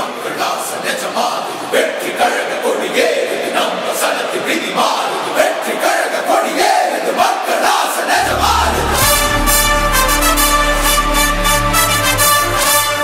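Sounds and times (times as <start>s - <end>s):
crowd shouting and cheering: 1.6s - 13.0s
music with deep bass: 8.2s - 13.0s.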